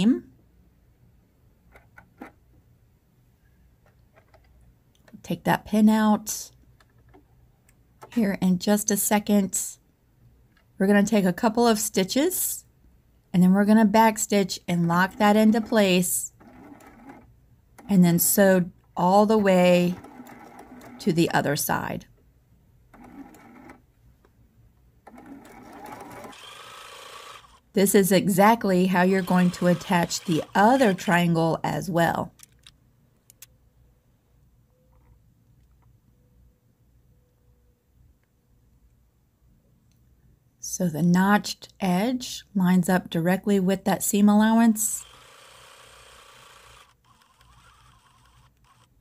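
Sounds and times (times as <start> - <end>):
electric sewing machine stitching: 14.8 - 18.4, 19.2 - 21.3, 22.9 - 23.8, 25.0 - 31.4, 44.8 - 49.0.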